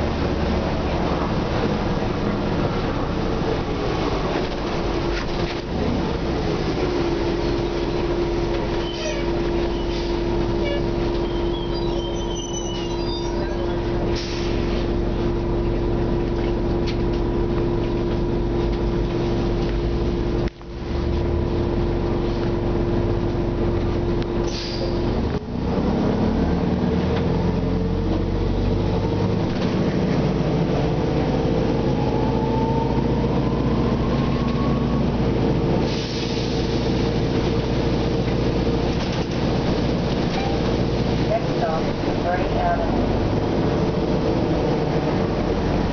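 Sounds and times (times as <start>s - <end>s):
bus engine running: 0.0s - 45.9s
rising drivetrain whine: 25.2s - 35.9s.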